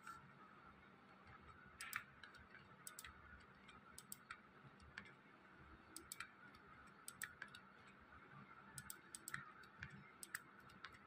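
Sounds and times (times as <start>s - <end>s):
computer mouse button clicks: 1.8s - 3.1s, 4.0s - 4.3s, 7.1s - 7.6s, 8.8s - 11.0s.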